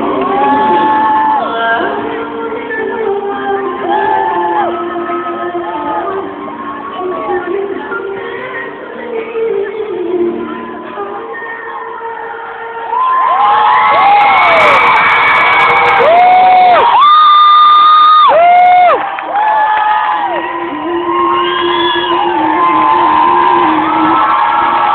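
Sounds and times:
concert audience cheering and screaming: 0.0s - 2.5s, 3.6s - 7.5s, 11.6s - 24.9s.

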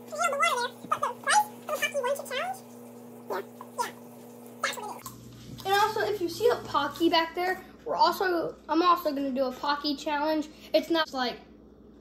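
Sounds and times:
person talking: 0.0s - 11.5s.

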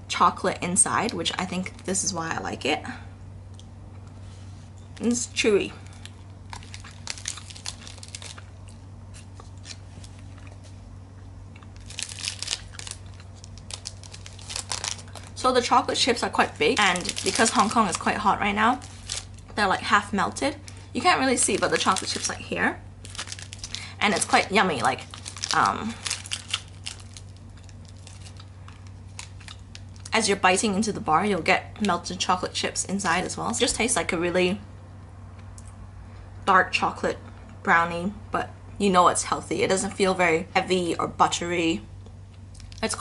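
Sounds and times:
low steady hum: 0.0s - 43.0s
foil wrapper crinkling: 5.0s - 10.8s, 11.6s - 30.2s.

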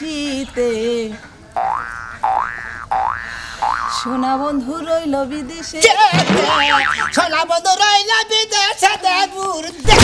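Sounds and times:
cartoon boing sound effect: 1.6s - 4.1s, 6.2s - 7.2s.

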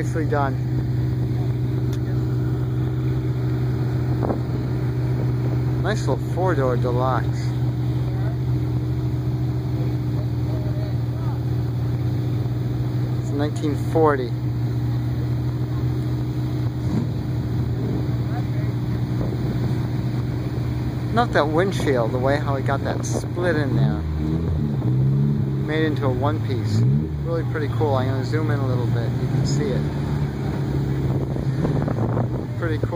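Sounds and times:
car engine idling: 0.0s - 32.9s.

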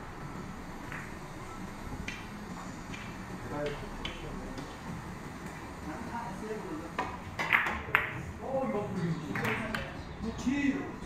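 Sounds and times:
billiard balls clicking: 0.8s - 1.2s, 2.9s - 4.3s, 7.0s - 8.2s
cue tip striking ball: 0.8s - 1.2s, 7.0s - 8.2s.

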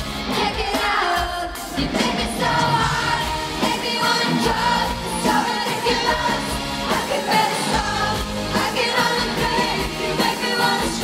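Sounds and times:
pop-rock band playing: 0.0s - 11.0s.

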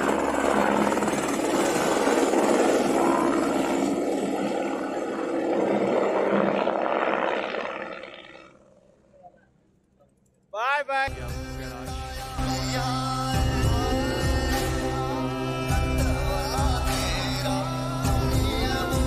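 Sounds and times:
helicopter rotor and engine noise: 0.0s - 10.4s.

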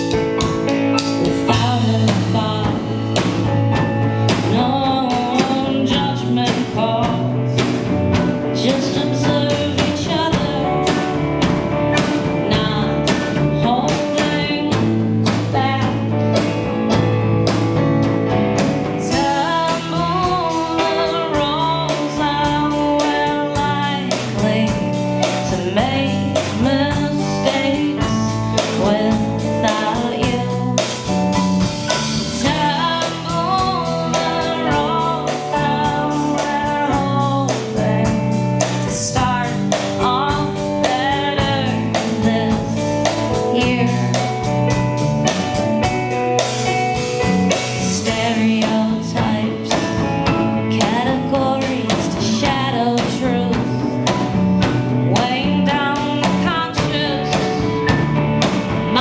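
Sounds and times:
bass guitar: 0.0s - 59.0s
drum kit beat: 0.0s - 59.0s
electric guitar: 0.0s - 59.0s
electric keyboard: 0.0s - 59.0s
woman singing: 1.1s - 17.6s, 18.8s - 44.8s, 47.5s - 59.0s.

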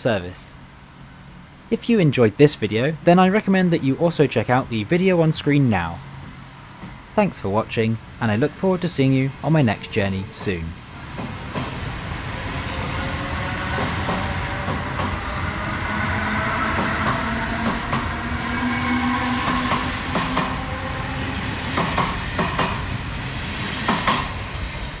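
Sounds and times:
electric train whine: 8.0s - 25.0s
train wheels rumbling on rail: 8.0s - 25.0s.

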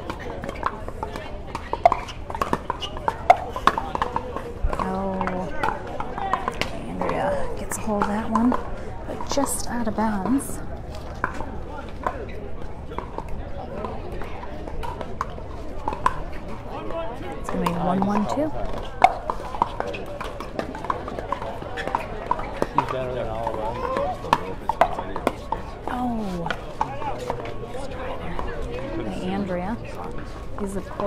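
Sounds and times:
murmuring voices: 0.0s - 31.0s.

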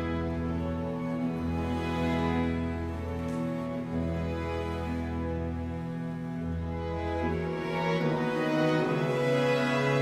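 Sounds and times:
slow baroque string music: 0.0s - 10.0s.

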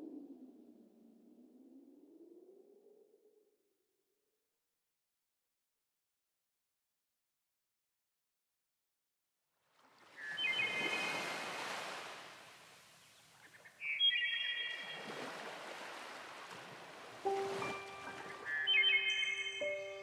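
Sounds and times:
ocean surf: 10.1s - 13.0s, 14.8s - 20.0s.

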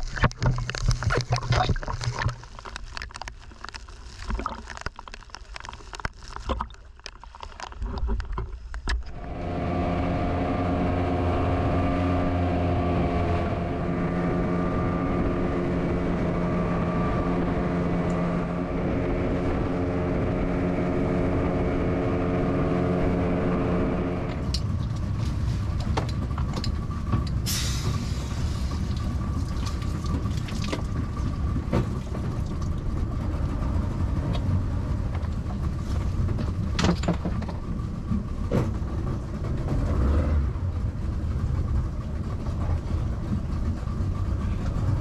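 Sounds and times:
water sloshing: 0.0s - 9.1s, 28.8s - 33.0s
boat engine droning: 7.8s - 45.0s.

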